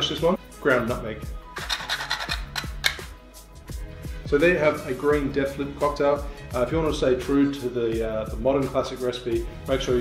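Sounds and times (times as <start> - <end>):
nutmeg grating on grater: 1.5 - 3.1.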